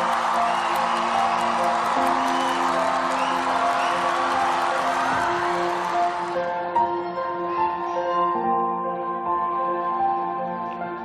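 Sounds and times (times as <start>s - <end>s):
crowd cheering and screaming: 0.0s - 6.5s.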